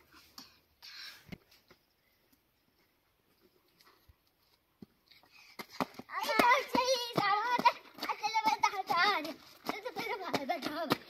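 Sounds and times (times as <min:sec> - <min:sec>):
young child singing: 0:06.1 - 0:11.0.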